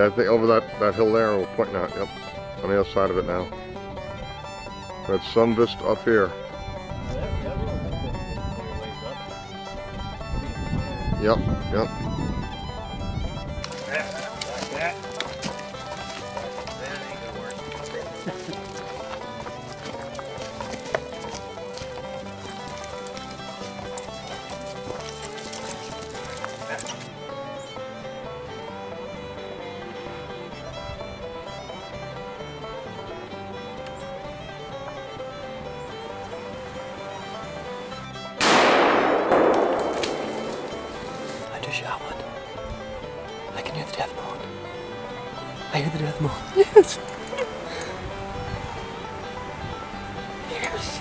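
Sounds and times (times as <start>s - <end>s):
background music: 0.0s - 51.0s
loud gunshot: 38.4s - 40.8s.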